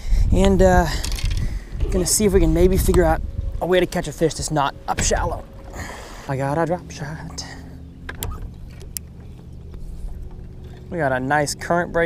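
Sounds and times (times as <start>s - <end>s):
trolling motor humming: 0.5s - 12.0s.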